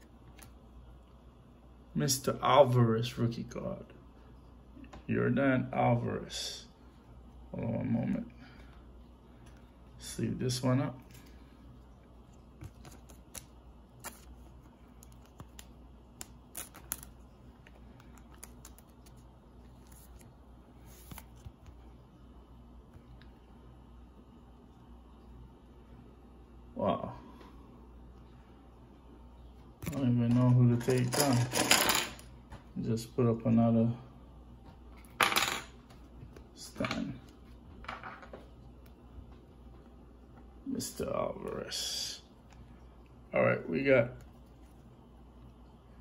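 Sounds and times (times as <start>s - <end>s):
low room hum: 0.0s - 46.0s
card clicks and rustles: 12.5s - 21.8s.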